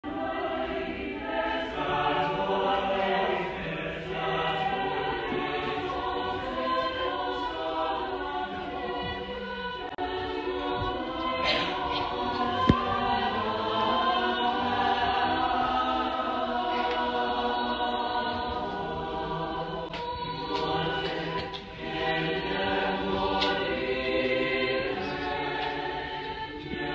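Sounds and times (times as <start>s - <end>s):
choir singing in parts: 0.0s - 26.9s.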